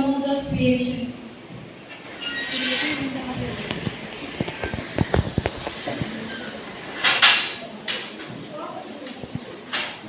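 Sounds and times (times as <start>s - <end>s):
murmur of crowd in hall: 0.0s - 10.0s.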